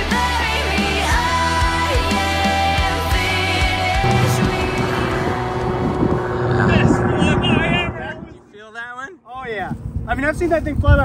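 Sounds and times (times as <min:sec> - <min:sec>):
plane engine droning: 0:03.8 - 0:09.0.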